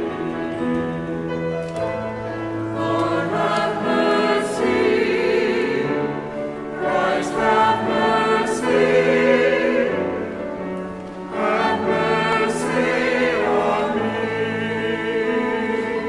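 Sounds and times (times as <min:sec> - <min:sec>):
church choir singing: 0:00.0 - 0:16.0.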